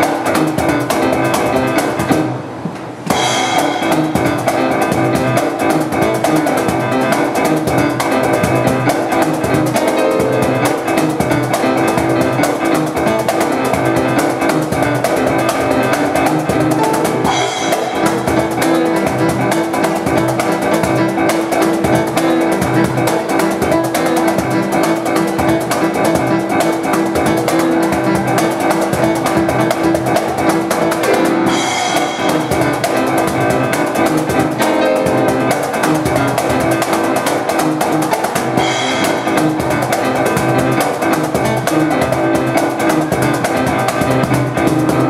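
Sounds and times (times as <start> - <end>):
cajon beat: 0.0 - 45.0
keyboard playing: 0.0 - 45.0
cymbal crashes: 3.1 - 4.8, 16.9 - 18.7.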